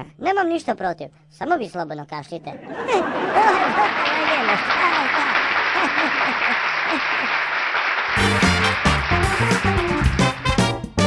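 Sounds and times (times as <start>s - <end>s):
audience laughter: 2.5s - 10.0s
applause: 3.3s - 10.8s
theme music: 8.1s - 11.0s.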